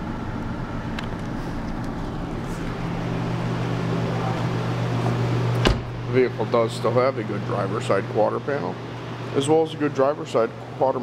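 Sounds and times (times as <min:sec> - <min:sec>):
car engine idling: 0:02.0 - 0:07.1.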